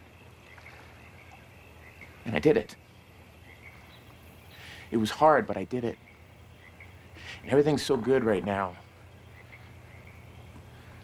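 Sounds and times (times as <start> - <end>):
soft chirp: 0.0 - 4.9, 8.8 - 11.0
steady low hum: 0.0 - 11.0.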